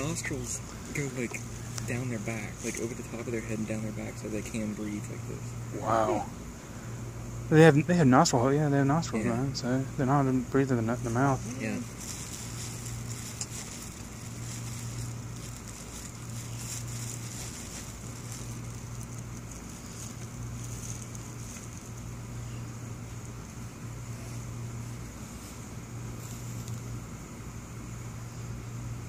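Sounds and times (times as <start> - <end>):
constant low hum: 0.0 - 29.0.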